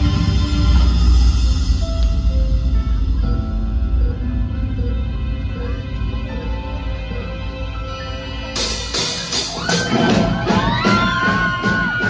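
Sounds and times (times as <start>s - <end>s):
held keyboard notes: 1.9s - 9.1s
rock band playing: 7.0s - 12.0s.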